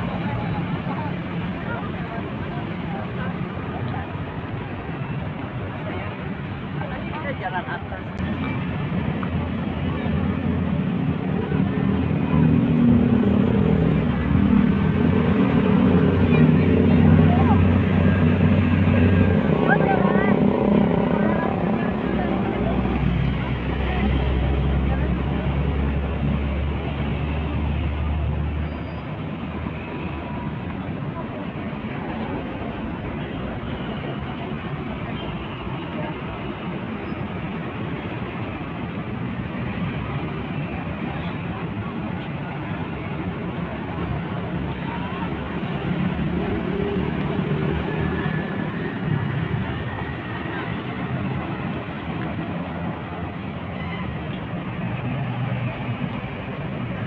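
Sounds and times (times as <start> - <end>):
passers-by talking: 0.0 - 57.0
street traffic passing: 0.0 - 57.0.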